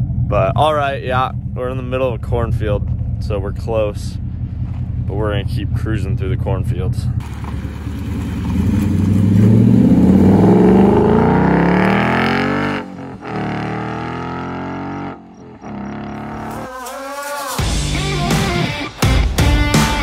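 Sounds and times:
car engine accelerating: 0:00.0 - 0:16.9.

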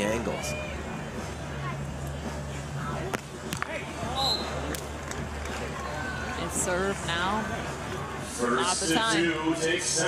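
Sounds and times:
voices and crowd murmur: 0:00.0 - 0:10.0
volleyball slaps by hands: 0:03.1 - 0:03.8.

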